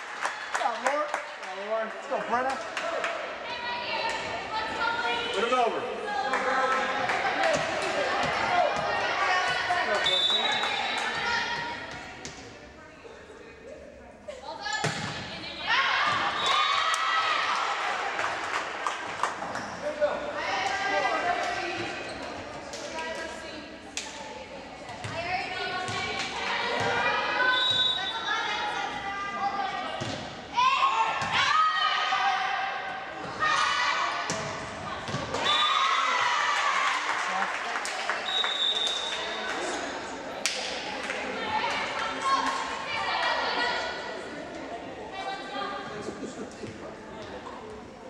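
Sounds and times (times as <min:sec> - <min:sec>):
voices shouting and cheering: 0:01.5 - 0:12.2, 0:13.4 - 0:46.3
volleyball hits: 0:14.8 - 0:15.3.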